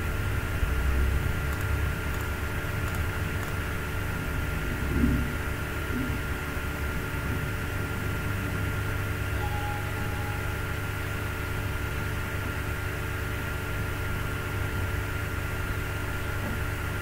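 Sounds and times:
short faint tone: 9.2s - 11.6s.

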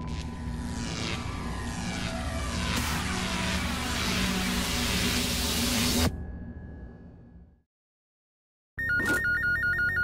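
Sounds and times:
desk telephone ringing: 8.8s - 10.0s.

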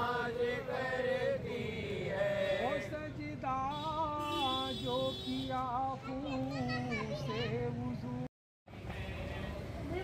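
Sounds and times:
men chanting devotional recitation: 0.0s - 6.7s.

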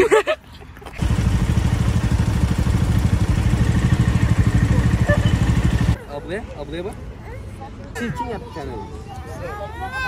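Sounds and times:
motorcycle engine running: 1.0s - 6.0s.

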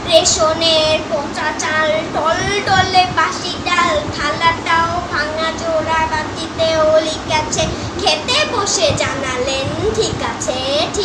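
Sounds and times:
girl chanting a rhyme: 0.1s - 11.0s.

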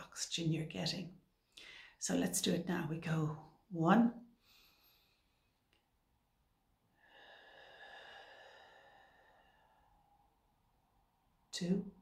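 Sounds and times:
woman breathing deeply: 1.5s - 2.0s, 4.4s - 5.6s, 6.8s - 10.5s.

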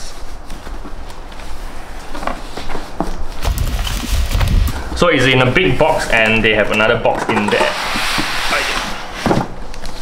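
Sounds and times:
cardboard rustling and scraping: 0.1s - 10.0s.

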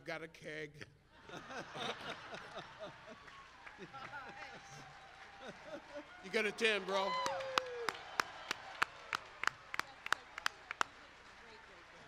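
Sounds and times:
person clapping hands: 3.2s - 12.0s.

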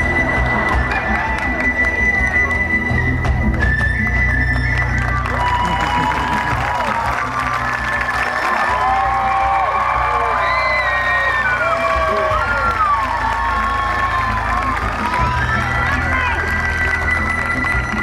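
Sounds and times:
audience cheering and shouting: 0.0s - 3.2s, 4.7s - 18.0s
music over a pa: 0.0s - 18.0s.

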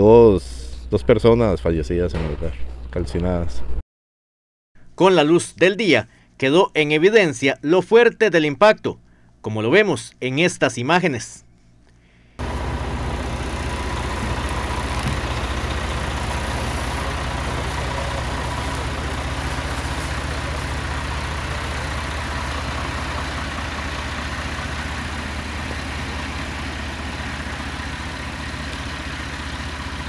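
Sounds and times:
engine idling: 12.4s - 30.0s.

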